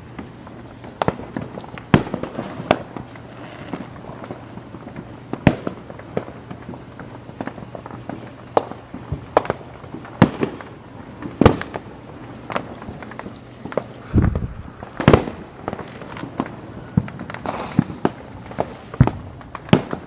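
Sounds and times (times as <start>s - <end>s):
fireworks bangs and pops: 0.0s - 20.0s.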